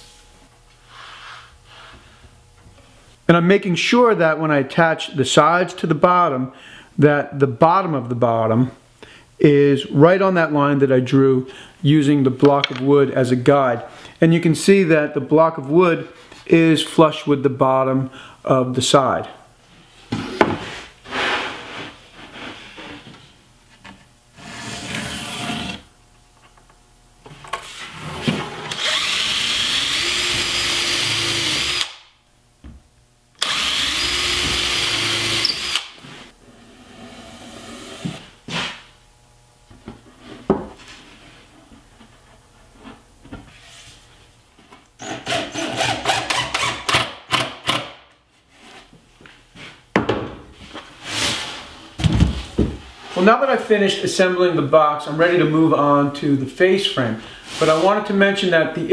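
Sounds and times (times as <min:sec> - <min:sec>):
cordless drill driving screws: 0:28.7 - 0:32.0, 0:33.4 - 0:36.0.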